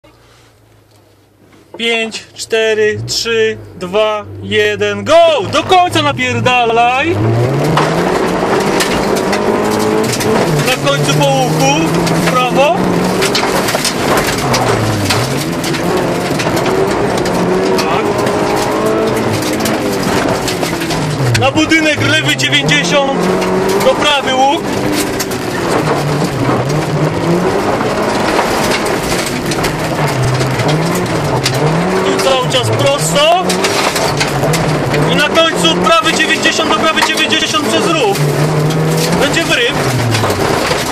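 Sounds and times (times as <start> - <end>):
car engine accelerating: 0.0 - 40.9
tyres crunching over gravel: 1.6 - 40.9
clicks and knocks from rough road: 5.1 - 40.9.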